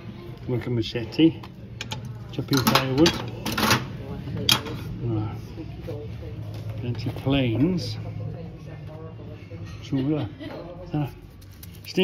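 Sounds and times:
metal tools clinking and scraping: 0:01.8 - 0:03.9.

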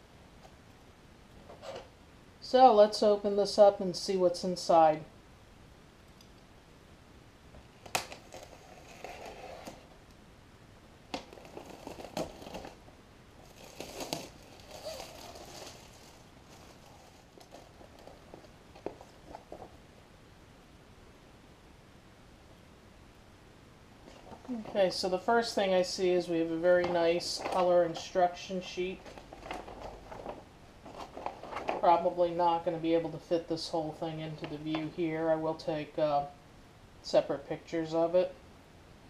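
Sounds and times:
plastic wrapping crinkling: 0:07.7 - 0:09.9, 0:11.1 - 0:19.8, 0:26.8 - 0:32.7.

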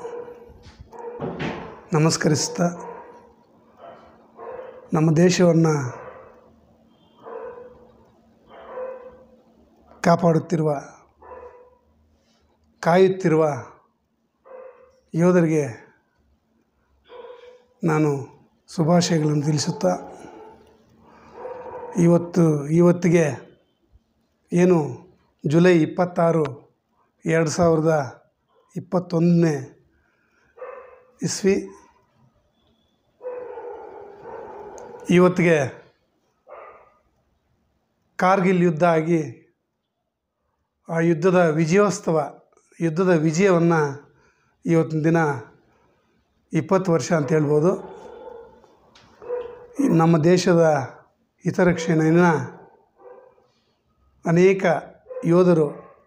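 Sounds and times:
dog barking faintly: 0:00.0 - 0:07.9, 0:08.5 - 0:10.5, 0:11.2 - 0:11.8, 0:17.1 - 0:18.4, 0:19.0 - 0:22.6, 0:33.1 - 0:35.9, 0:46.9 - 0:50.1, 0:54.9 - 0:56.0.

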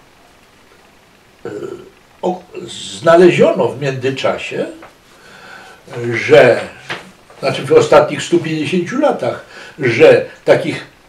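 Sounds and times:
man saying oh: 0:01.5 - 0:03.6.

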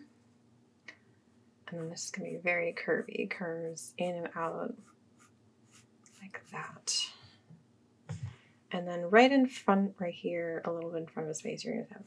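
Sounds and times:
pencil scratching on paper: 0:01.7 - 0:03.4, 0:04.3 - 0:06.9.

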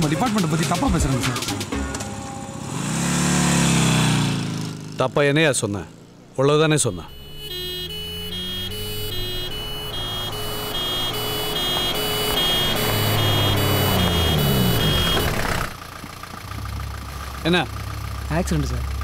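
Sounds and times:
vehicle engine idling: 0:05.7 - 0:19.0
two-tone electronic beeping: 0:06.9 - 0:15.7
low rumble: 0:15.3 - 0:19.0.

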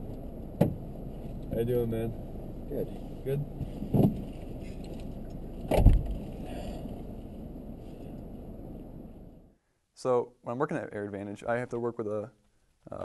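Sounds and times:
van engine low rumble: 0:00.0 - 0:09.6
heavy van door slam: 0:00.6 - 0:00.9, 0:03.6 - 0:04.3, 0:05.6 - 0:06.8.

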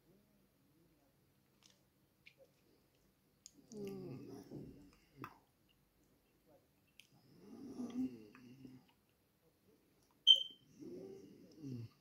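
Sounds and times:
short high electronic beep: 0:10.3 - 0:10.6.

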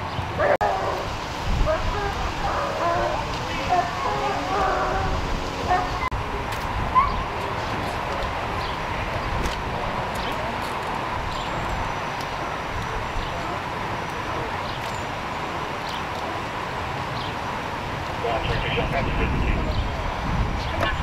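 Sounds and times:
traffic rumble: 0:00.0 - 0:21.0.

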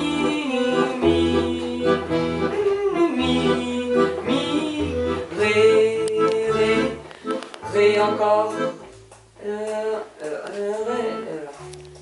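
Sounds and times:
accordion chords: 0:00.0 - 0:12.0.

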